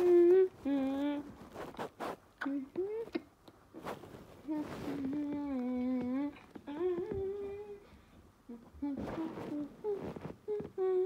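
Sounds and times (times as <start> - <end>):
person humming: 0.0 - 1.3, 2.4 - 3.3, 4.4 - 7.9, 8.5 - 11.0.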